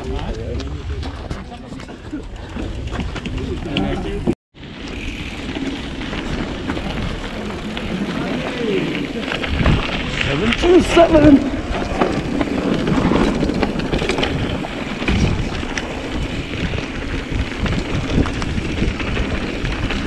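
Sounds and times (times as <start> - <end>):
bike clicks and rattles: 0.0 - 20.0
tyres rolling on dirt: 0.0 - 20.0
wind rushing on camera: 0.0 - 20.0.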